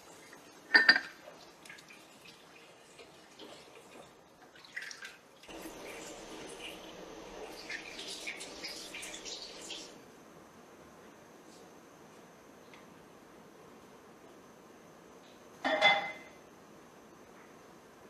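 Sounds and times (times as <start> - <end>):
soup bubbling in pot: 0.0 - 10.0.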